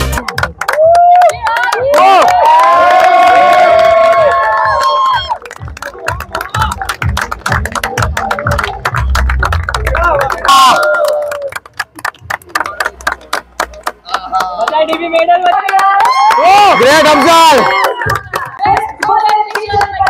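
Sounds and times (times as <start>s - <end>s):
crowd cheering and shouting: 0.1s - 6.9s, 9.7s - 11.6s, 15.6s - 20.0s
music with steady beat: 4.0s - 10.4s.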